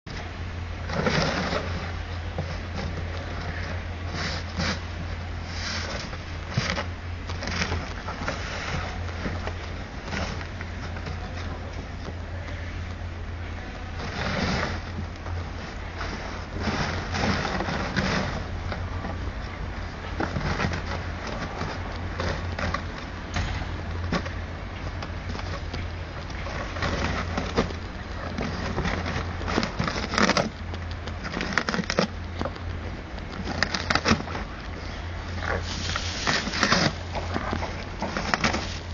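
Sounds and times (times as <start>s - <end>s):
steady low hum: 0.0s - 38.9s
dog crunching cardboard box: 0.1s - 12.7s, 13.8s - 38.9s.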